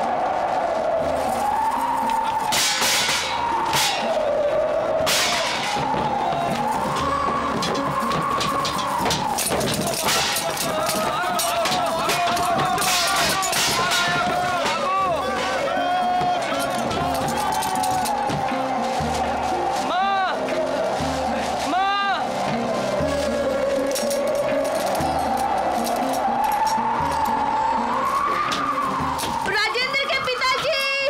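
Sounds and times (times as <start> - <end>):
low drumbeats: 0.0 - 27.6.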